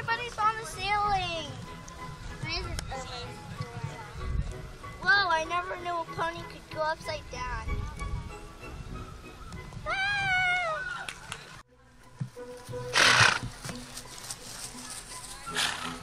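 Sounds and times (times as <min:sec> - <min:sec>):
horse whinnying: 0:12.9 - 0:13.4.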